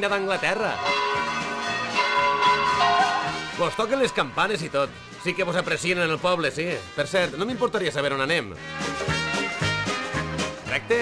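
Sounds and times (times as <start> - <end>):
church bells ringing: 0.0 - 5.6.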